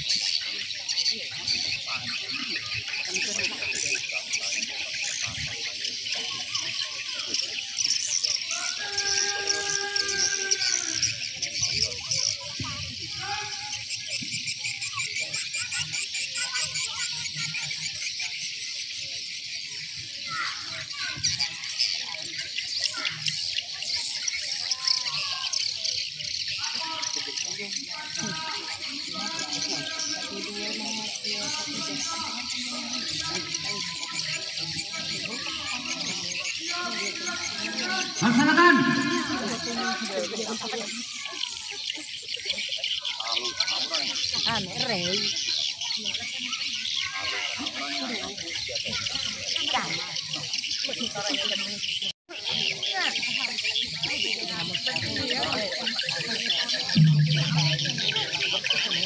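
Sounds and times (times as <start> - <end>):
insects chirping: 0.0 - 59.0
distant voices calling out: 20.2 - 45.5, 52.6 - 59.0.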